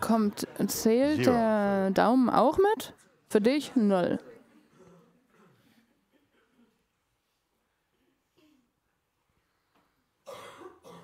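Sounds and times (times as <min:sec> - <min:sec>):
person coughing: 0:10.2 - 0:11.0.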